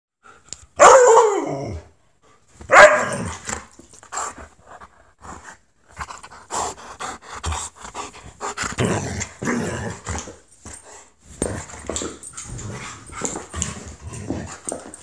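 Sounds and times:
dog barking calls: 2.7s - 3.2s.

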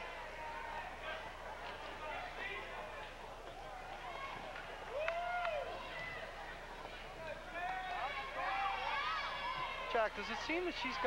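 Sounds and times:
mixed chatter: 0.0s - 11.0s.

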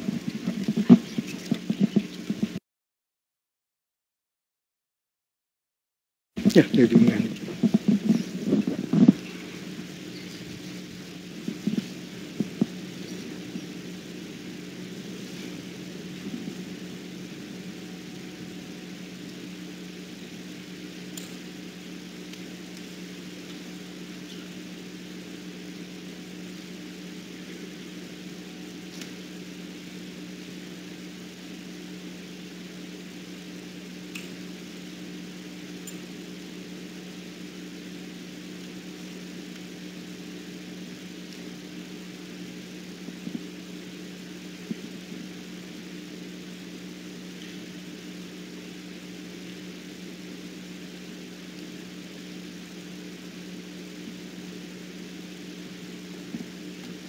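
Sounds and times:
steady low two-tone hum: 0.0s - 2.6s, 6.4s - 57.0s
faint hiss: 6.4s - 57.0s.

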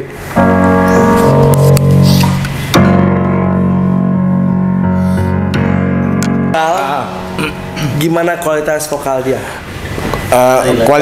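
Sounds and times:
digital piano playing chords: 0.0s - 10.5s.

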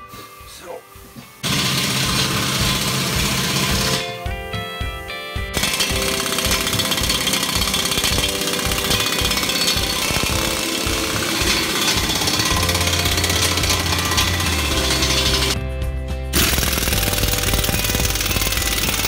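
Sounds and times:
faint music: 0.0s - 1.4s
impact wrench hammering: 1.4s - 4.2s, 5.5s - 15.6s, 16.4s - 19.0s.

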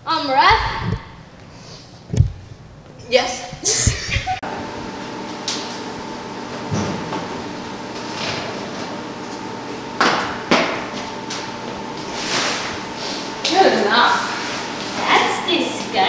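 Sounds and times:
steady hum: 0.0s - 16.0s.

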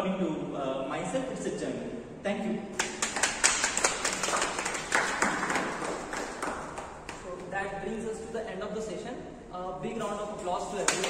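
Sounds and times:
audience clapping: 2.8s - 7.5s.

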